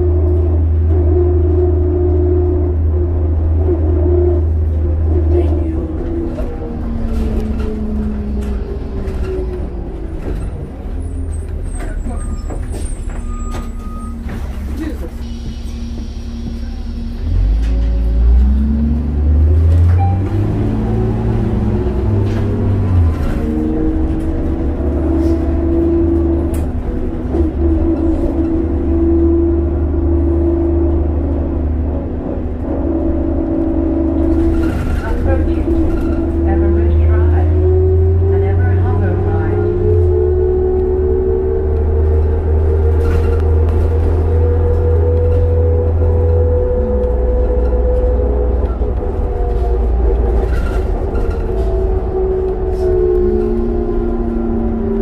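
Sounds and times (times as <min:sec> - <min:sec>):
bus diesel engine: 0:00.0 - 0:55.0.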